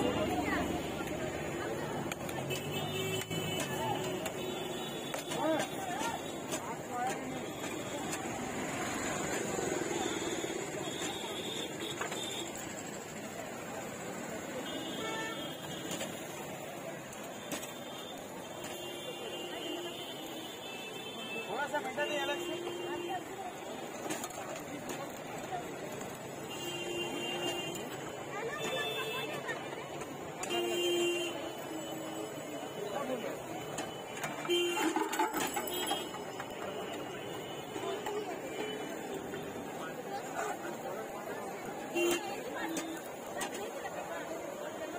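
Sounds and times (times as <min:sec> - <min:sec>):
bustle of voices: 0:00.0 - 0:44.9
utensils clattering against pots: 0:33.7 - 0:36.5.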